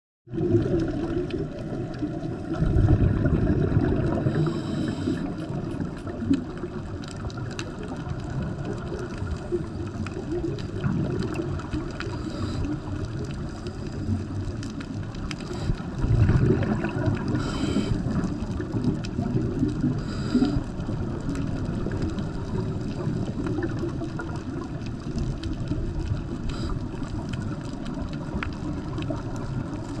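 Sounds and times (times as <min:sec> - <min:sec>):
gurgling bubbling water: 0:00.3 - 0:30.0
underwater low rumble: 0:00.3 - 0:30.0.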